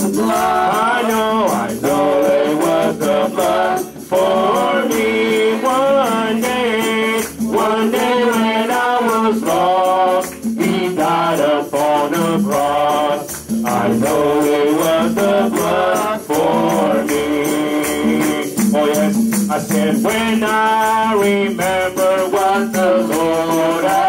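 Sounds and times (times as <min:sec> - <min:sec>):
person singing worship through pa: 0:00.0 - 0:24.0
shaker-like hand percussion: 0:00.0 - 0:24.0.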